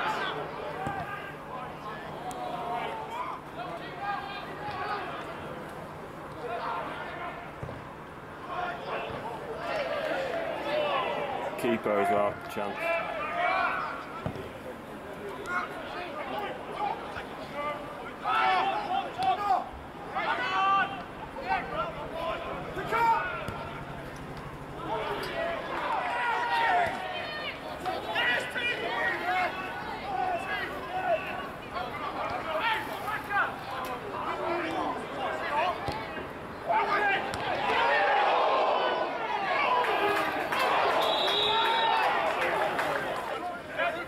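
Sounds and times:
outdoor background noise: 0.0 - 44.0
people shouting: 18.2 - 23.6, 24.8 - 33.6, 34.2 - 43.1.

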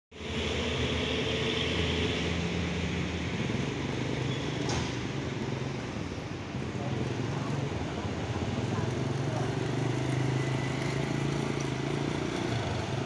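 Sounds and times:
vehicle engine droning: 0.2 - 13.0.

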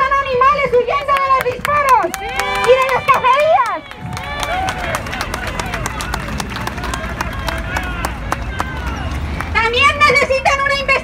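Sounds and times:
crowd voices talking: 0.6 - 11.0.

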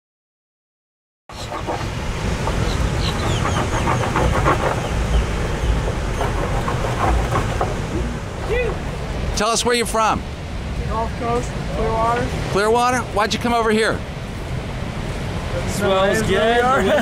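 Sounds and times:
wind rumbling on microphone: 1.3 - 16.8.

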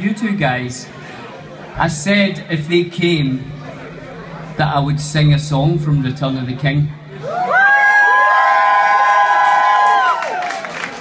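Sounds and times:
audience cheering: 7.2 - 11.0.

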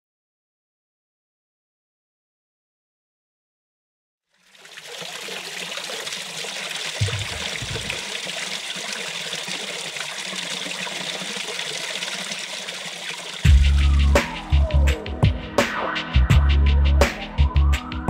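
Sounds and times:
trickling water: 4.3 - 14.0
deep bass music beat: 7.0 - 8.0, 13.4 - 18.0
low bass swell: 13.5 - 15.0, 16.2 - 17.8.

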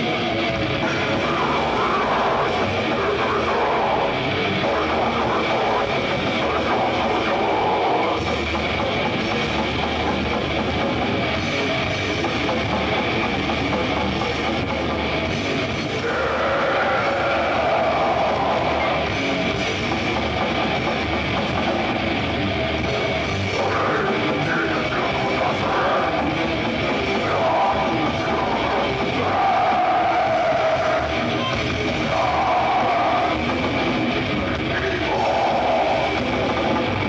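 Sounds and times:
metal band playing live: 0.0 - 37.0.

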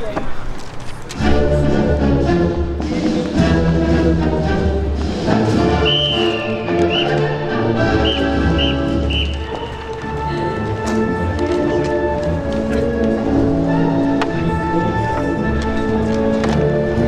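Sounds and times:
brass band music: 1.2 - 17.0.

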